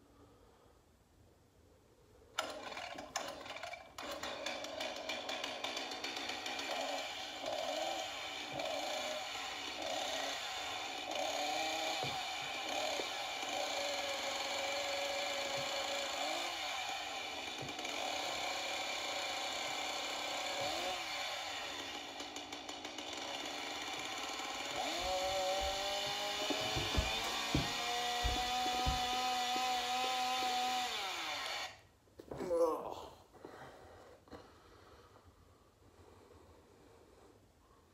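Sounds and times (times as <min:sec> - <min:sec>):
chainsaw engine running: 0:02.4 - 0:31.8.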